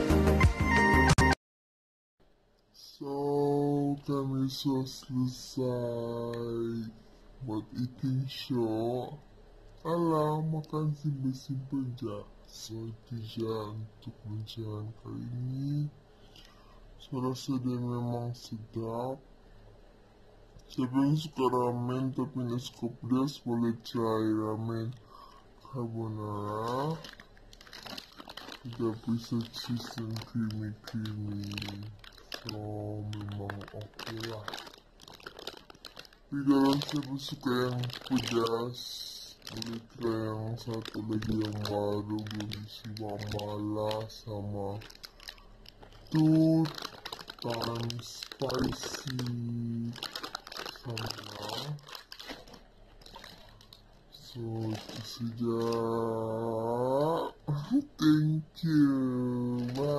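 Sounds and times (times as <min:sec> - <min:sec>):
plastic packet crinkling: 0:23.8 - 0:57.2, 0:58.7 - 0:59.9.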